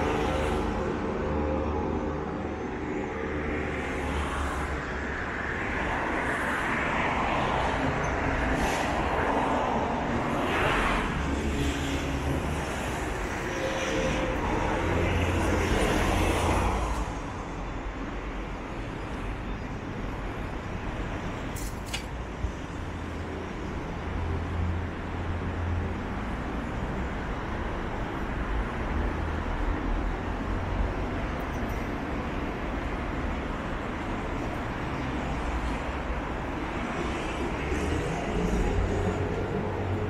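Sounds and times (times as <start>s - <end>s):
cars and trucks passing: 0.0s - 40.0s.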